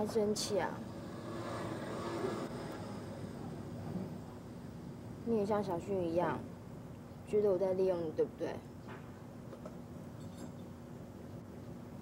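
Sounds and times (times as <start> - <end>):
distant vehicle drone: 0.0 - 5.1.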